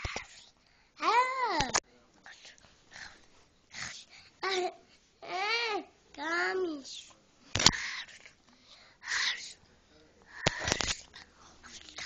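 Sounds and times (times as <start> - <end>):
child whispering: 2.2 - 5.7, 6.8 - 8.4, 9.0 - 9.6, 10.3 - 12.0
child breathing: 2.9 - 5.1, 7.6 - 9.5.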